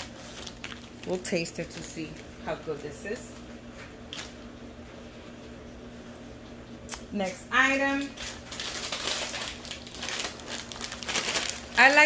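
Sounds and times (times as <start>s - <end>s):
plastic pouch rustling: 0.0s - 2.3s, 8.0s - 12.0s
steady low hum: 0.0s - 12.0s.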